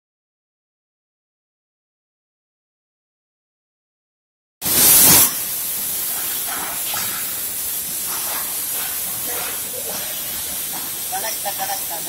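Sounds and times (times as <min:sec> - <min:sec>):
cutting torch hissing: 0:04.6 - 0:12.0.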